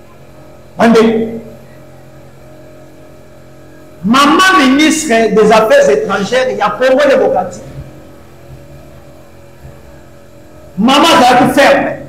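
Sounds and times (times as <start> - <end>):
steady low background hum: 0.0 - 12.0
man speaking: 0.8 - 1.5, 4.0 - 7.8, 10.8 - 12.0.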